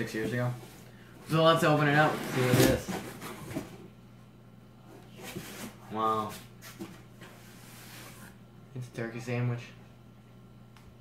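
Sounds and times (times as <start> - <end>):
steady low hum: 0.0 - 11.0
cardboard flaps scraping and rustling: 1.4 - 3.8.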